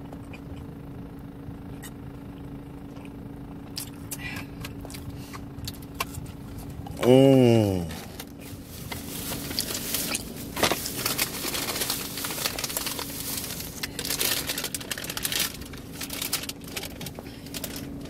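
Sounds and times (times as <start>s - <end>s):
paper bag rustling: 8.0s - 18.0s.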